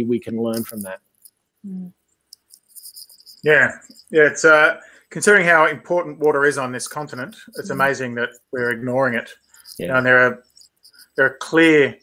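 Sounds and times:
high-pitched tone: 7.0 - 10.4.

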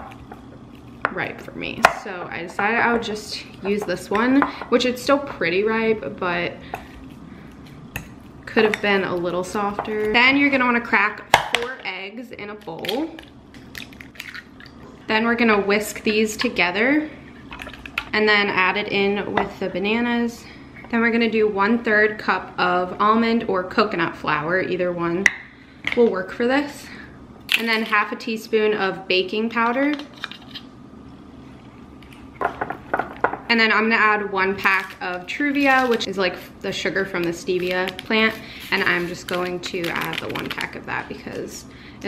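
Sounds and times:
low room hum: 0.0 - 42.0
eggshells cracking: 13.1 - 14.7.

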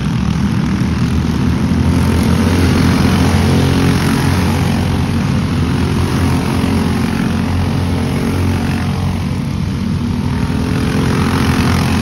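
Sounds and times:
go-kart engines racing: 0.0 - 12.0.

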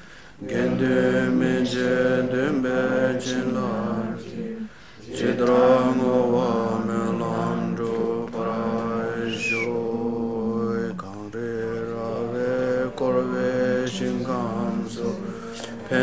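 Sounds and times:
low voice chanting: 0.4 - 16.0.

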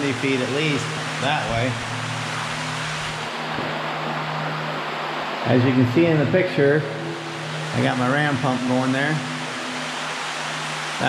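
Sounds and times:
low hum: 0.0 - 11.0
water rushing in steel pipe: 0.0 - 11.0.

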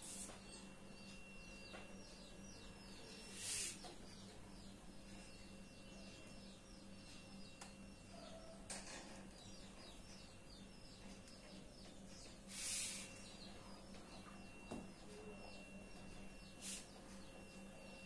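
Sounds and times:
steady low hum: 0.0 - 18.0
burst of hiss: 12.5 - 13.1.

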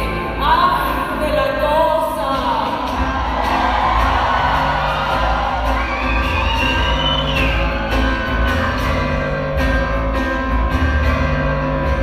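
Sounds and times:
live acoustic guitar music: 0.0 - 12.0
audience cheering and whooping: 2.9 - 9.0.

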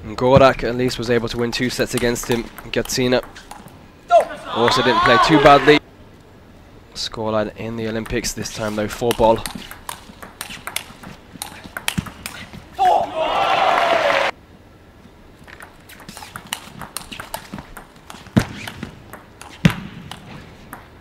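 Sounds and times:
table tennis ball clicking: 1.2 - 3.8, 7.9 - 12.4, 15.4 - 21.0
crowd cheering and shouting: 4.1 - 5.8, 12.8 - 14.3.

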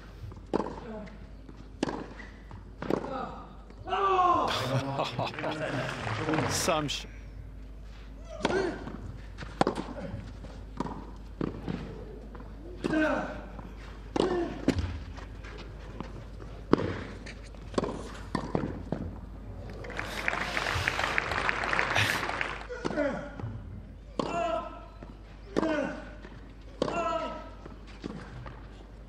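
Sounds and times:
racket hitting ball: 1.8 - 2.2, 8.3 - 10.1, 14.1 - 15.0, 16.7 - 19.1, 26.8 - 27.3
crowd applause: 4.6 - 7.0, 19.8 - 22.7.

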